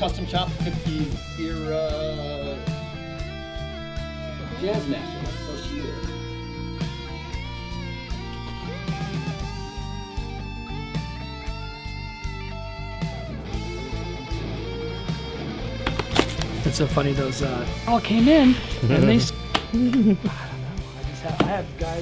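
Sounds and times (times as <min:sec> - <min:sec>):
electric guitar music: 0:00.0 - 0:22.0.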